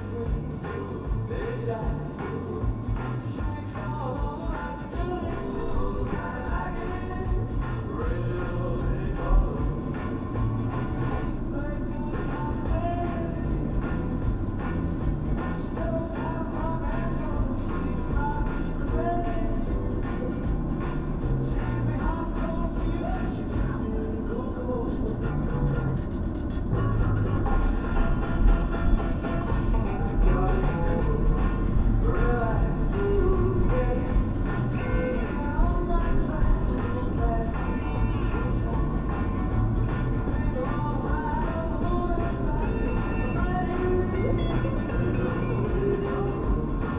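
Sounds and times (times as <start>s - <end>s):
music on car radio: 0.0s - 46.9s.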